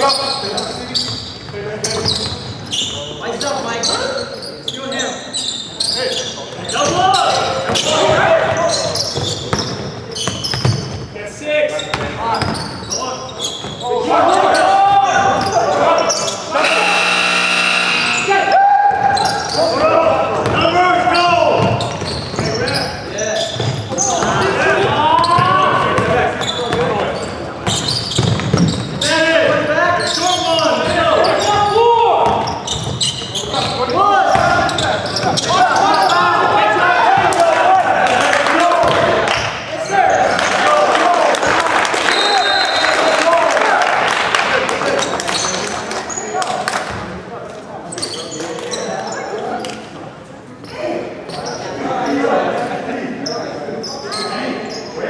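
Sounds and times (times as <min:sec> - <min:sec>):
basketball bouncing on court: 0:09.2 - 0:11.0, 0:11.9 - 0:12.7, 0:27.6 - 0:29.0
players shouting: 0:13.9 - 0:21.8, 0:33.6 - 0:44.0
loud buzzer: 0:16.6 - 0:18.5.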